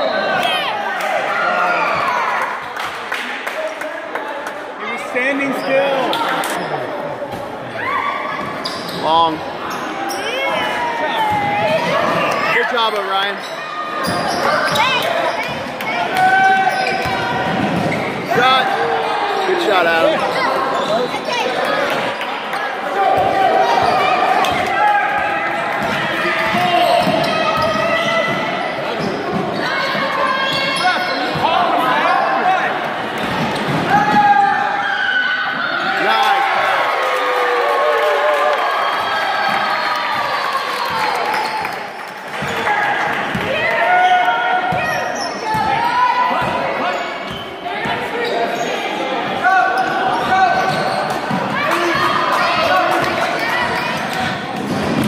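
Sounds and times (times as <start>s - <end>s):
players and spectators talking: 0.0s - 55.0s.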